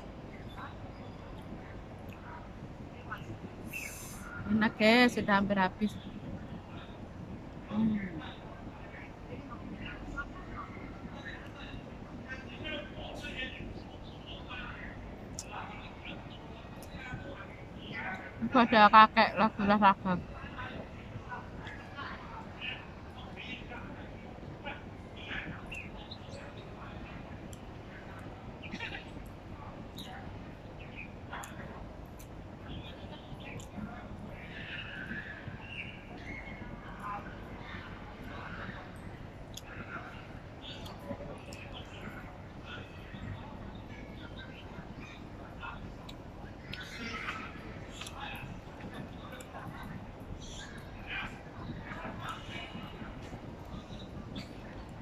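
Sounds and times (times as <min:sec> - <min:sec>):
low outdoor rumble: 0:00.0 - 0:55.0
soft chewing: 0:39.5 - 0:42.2, 0:45.0 - 0:55.0.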